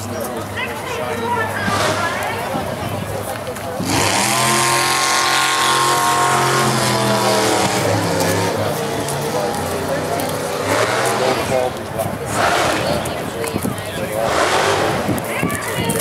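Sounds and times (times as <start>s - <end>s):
vehicle engine running: 0.0s - 16.0s.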